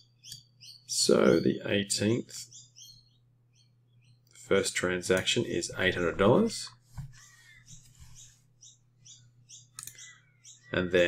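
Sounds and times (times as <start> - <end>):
low steady hum: 0.0 - 11.0
computer mouse click: 9.7 - 10.0.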